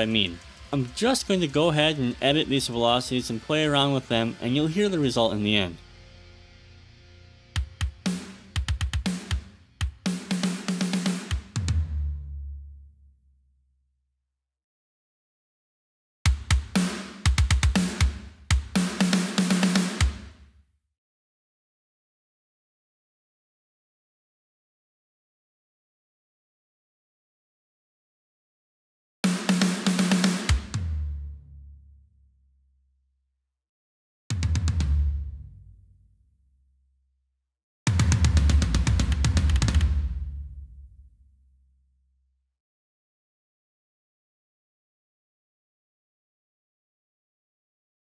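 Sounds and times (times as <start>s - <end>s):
kick drum: 7.6s - 10.4s, 16.3s - 19.1s, 20.0s - 20.4s
tom drum fill: 7.6s - 12.0s, 16.3s - 20.4s, 29.2s - 31.0s, 37.9s - 40.6s.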